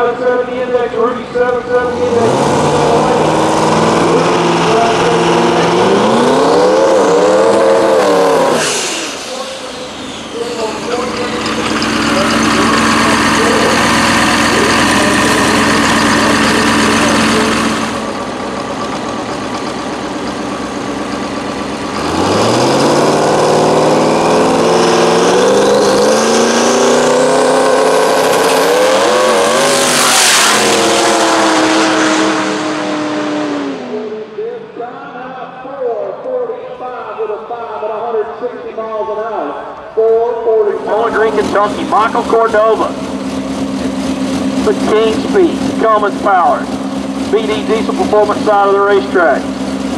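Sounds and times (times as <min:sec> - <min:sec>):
dragster engine revving: 0:00.0 - 0:34.4, 0:39.8 - 0:49.9
dragster accelerating past: 0:01.4 - 0:34.1.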